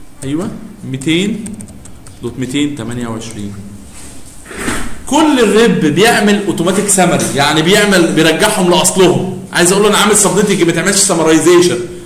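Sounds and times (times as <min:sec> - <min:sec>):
keyboard typing: 0:00.2 - 0:03.6
man speaking: 0:00.2 - 0:03.8, 0:05.1 - 0:12.0.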